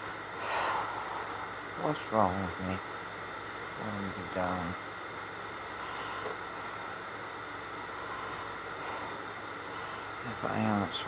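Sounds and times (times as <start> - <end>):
faint low hum: 0.0 - 11.0
static hiss: 0.0 - 11.0.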